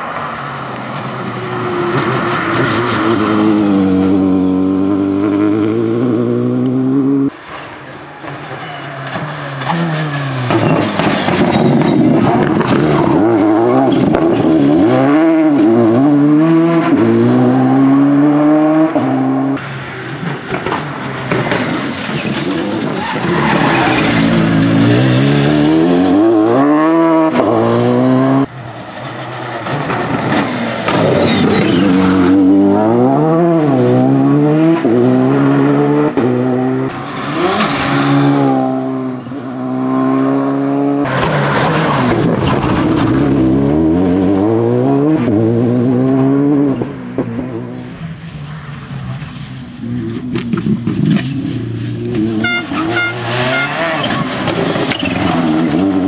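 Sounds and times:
rally car engine revving: 1.5s - 56.0s.

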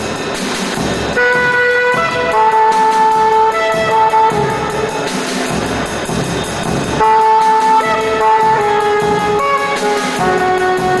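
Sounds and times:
drum kit and cymbals: 0.0s - 11.0s
saxophone long notes: 1.2s - 5.4s, 7.0s - 11.0s.

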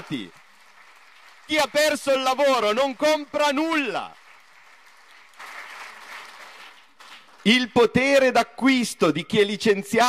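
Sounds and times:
audience applauding: 0.0s - 7.7s.

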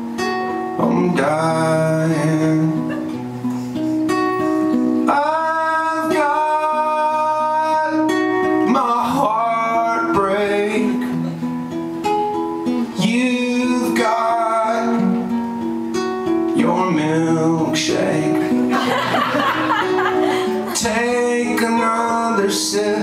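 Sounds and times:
acoustic guitar playing: 0.0s - 23.0s
man singing long held notes: 5.1s - 11.3s, 20.2s - 23.0s.

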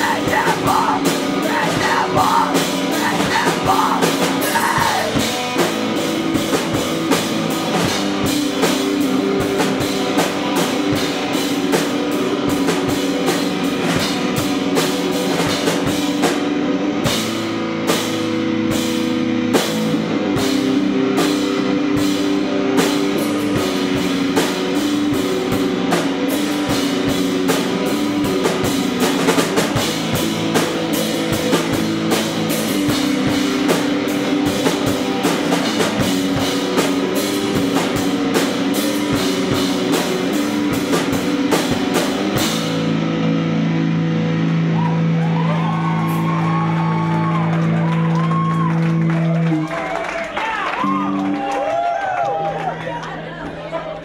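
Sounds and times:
loud rock band playing: 0.0s - 52.8s.

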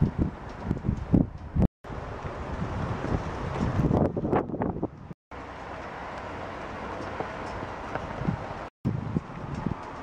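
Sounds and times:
wind buffeting microphone: 0.0s - 5.2s, 5.8s - 10.0s.

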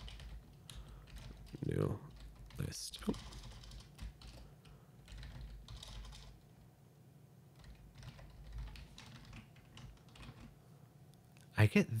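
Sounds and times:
computer keyboard typing: 0.0s - 6.6s, 7.5s - 10.6s.

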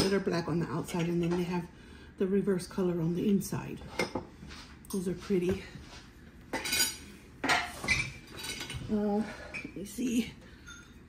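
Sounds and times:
ceramic cups clinking: 6.5s - 8.8s.

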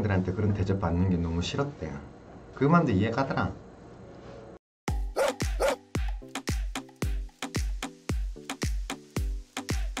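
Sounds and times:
upbeat dance music: 4.9s - 10.0s
dog barking: 5.1s - 5.8s.

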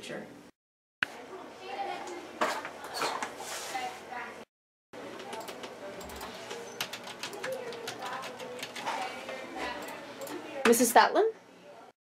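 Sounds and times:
keyboard keys clicking: 5.2s - 8.8s.

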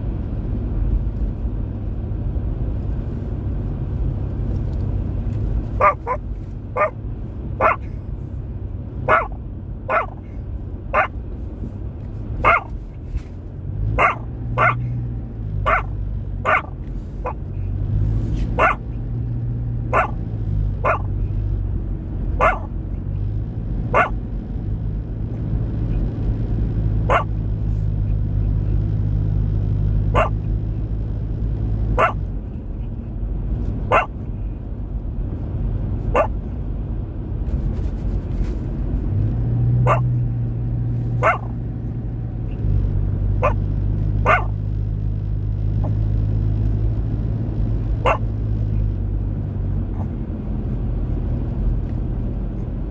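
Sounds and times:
car driving rumble: 0.0s - 52.9s
dog barking: 5.8s - 6.2s, 6.8s - 7.0s, 7.6s - 7.9s, 9.0s - 10.3s, 10.9s - 11.2s, 12.4s - 12.7s, 13.9s - 14.9s, 15.6s - 17.4s, 18.5s - 18.9s, 19.9s - 20.2s, 20.8s - 21.2s, 22.4s - 22.8s, 23.9s - 24.2s, 27.1s - 27.4s, 30.1s - 30.4s, 31.9s - 32.3s, 33.9s - 34.2s, 36.1s - 36.4s, 39.8s - 40.2s, 41.2s - 41.6s, 43.4s - 43.6s, 44.2s - 44.6s, 48.0s - 48.3s.

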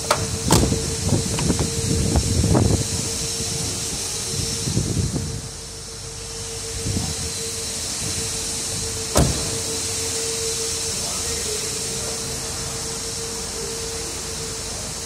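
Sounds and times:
car door shutting: 0.0s - 1.8s, 9.1s - 10.0s
high-pitched hum with hiss: 0.0s - 15.0s.

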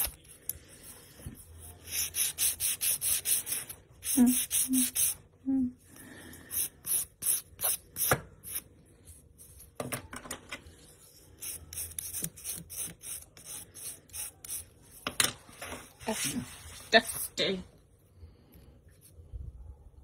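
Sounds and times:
nail file rasping: 1.9s - 5.2s.

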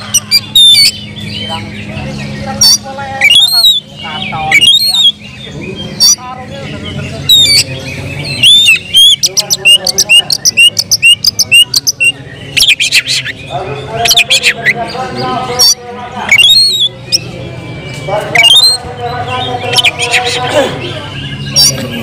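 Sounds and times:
bird singing loudly: 0.0s - 22.0s.

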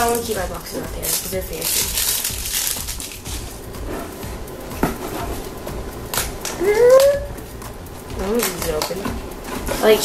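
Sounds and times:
plastic wrapper crinkling: 0.0s - 3.6s.

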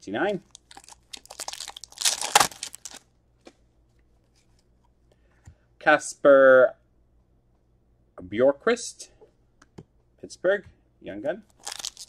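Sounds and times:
foil wrapper tearing and crinkling: 0.5s - 3.0s, 11.5s - 12.0s.

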